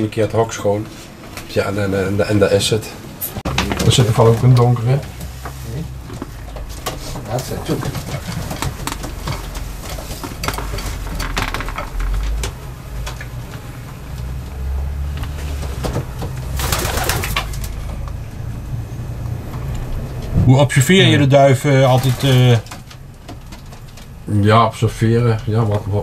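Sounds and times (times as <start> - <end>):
birds scuffling and knocking: 3.5 - 13.4, 15.5 - 18.1, 21.9 - 24.2
rustling flurry of wings: 16.4 - 17.8
pigeons cooing: 16.6 - 17.7.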